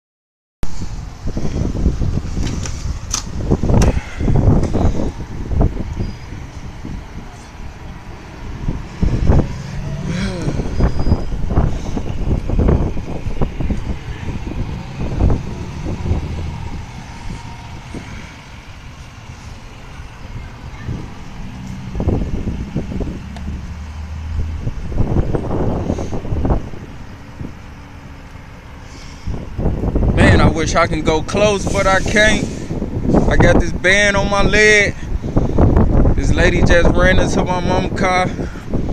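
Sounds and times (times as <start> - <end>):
vehicle engines running: 0.7 - 38.9.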